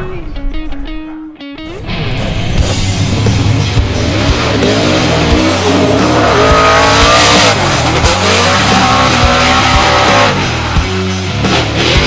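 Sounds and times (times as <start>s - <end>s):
car engine revving hard: 1.8s - 12.0s.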